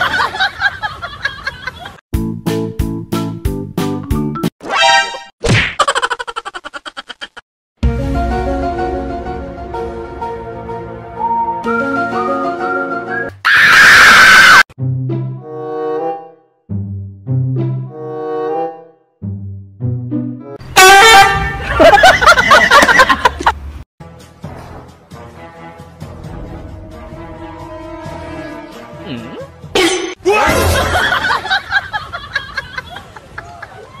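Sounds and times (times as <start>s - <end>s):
horn-like toot: 20.7s - 21.6s, 27.2s - 29.4s.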